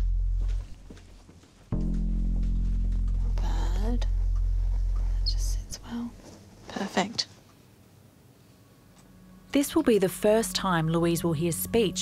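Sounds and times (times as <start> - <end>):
low music drone: 0.0 - 0.9, 1.7 - 6.2, 8.7 - 12.0
soft whispered voice: 5.0 - 7.4.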